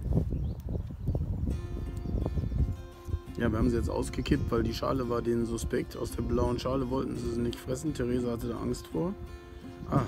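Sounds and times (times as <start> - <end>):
background music: 1.5 - 10.0.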